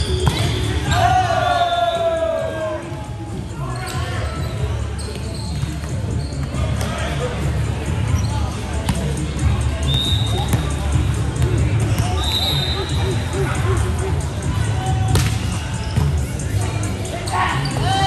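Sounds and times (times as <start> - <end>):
sneaker squeaks: 0.0 - 1.0, 3.6 - 7.0, 8.1 - 9.0, 9.8 - 10.9, 11.9 - 13.0, 15.1 - 16.4, 17.2 - 18.0
rumble of voices: 2.0 - 18.0.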